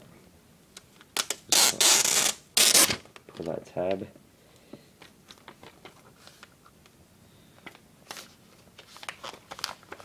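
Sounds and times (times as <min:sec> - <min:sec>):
plastic film rustling: 0:01.2 - 0:03.5, 0:07.6 - 0:10.0.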